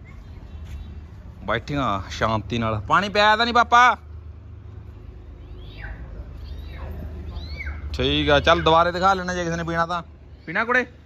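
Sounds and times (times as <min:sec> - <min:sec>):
high-pitched animal calls: 0:05.5 - 0:09.2.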